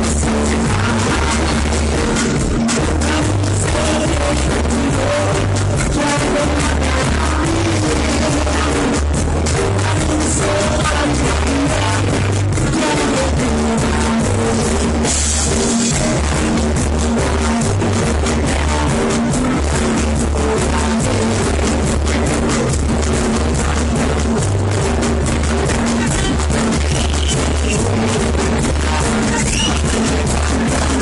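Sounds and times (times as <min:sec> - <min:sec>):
heavy repeating bass line: 0:00.0 - 0:31.0
reggae band playing: 0:00.0 - 0:31.0.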